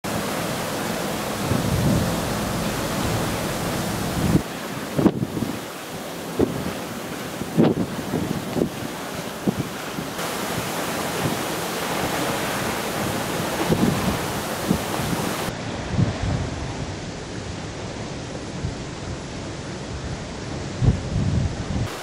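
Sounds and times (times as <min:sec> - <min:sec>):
choppy sea: 0:00.0 - 0:22.0
wind buffeting microphone: 0:01.1 - 0:22.0.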